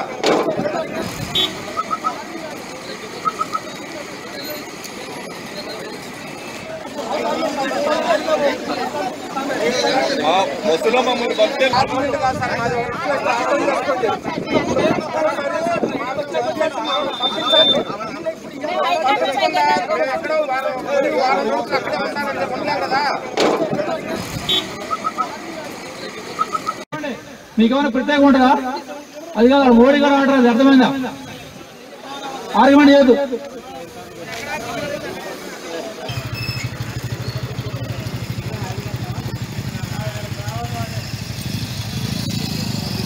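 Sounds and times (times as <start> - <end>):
people talking: 0.0 - 43.0
vehicle traffic: 0.0 - 43.0
short high beeps: 3.2 - 3.8, 24.5 - 25.3
motorcycle engine idling: 36.0 - 43.0.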